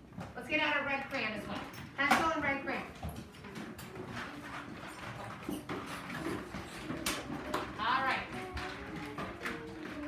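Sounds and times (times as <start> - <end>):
small knocks and clatter: 0.0 - 10.0.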